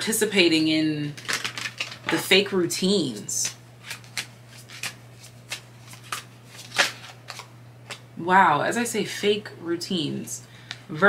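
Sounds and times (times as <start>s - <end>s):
cards being shuffled: 1.2s - 2.2s, 3.1s - 8.0s.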